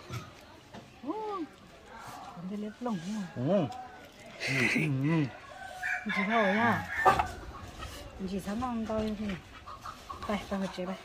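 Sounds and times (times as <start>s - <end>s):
rooster crowing: 5.4s - 7.5s.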